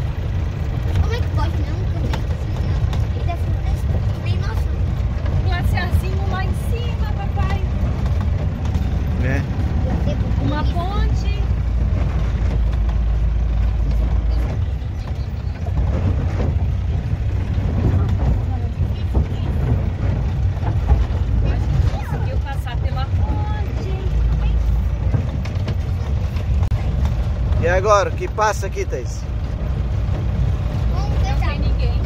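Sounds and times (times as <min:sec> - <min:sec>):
low engine drone: 0:00.0 - 0:32.0
tyres rolling over plank bridge: 0:00.0 - 0:32.0
tyres rumbling on gravel: 0:00.0 - 0:32.0.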